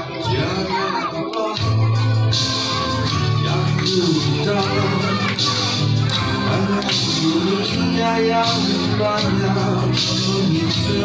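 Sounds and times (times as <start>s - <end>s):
children's voices and chatter: 0.0s - 11.0s
pop backing track over pa: 0.0s - 11.0s.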